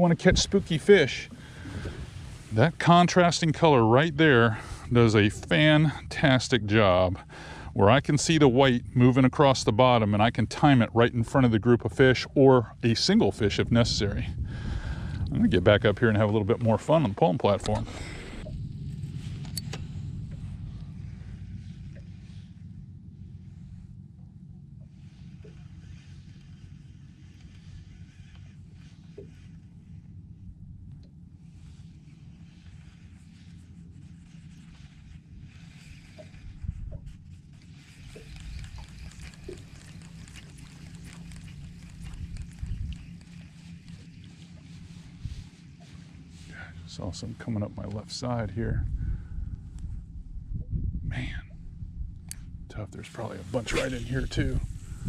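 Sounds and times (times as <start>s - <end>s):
wind rumbling on microphone: 0.0s - 30.9s, 31.5s - 46.2s, 46.9s - 55.0s
faint ticks: 36.0s - 44.6s.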